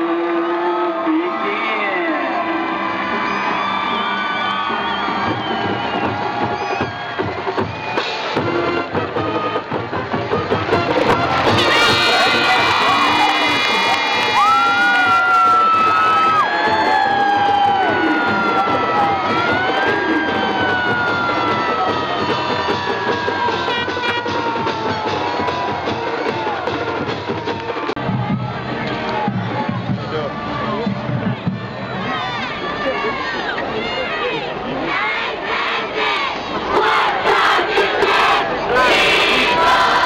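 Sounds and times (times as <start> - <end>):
music: 0.0 - 33.7, 35.2 - 40.0
crowd cheering and shouting: 0.0 - 40.0.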